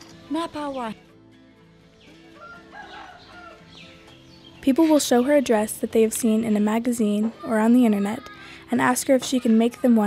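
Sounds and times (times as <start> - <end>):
soft background music: 0.0 - 10.0
rooster crowing: 2.4 - 3.7.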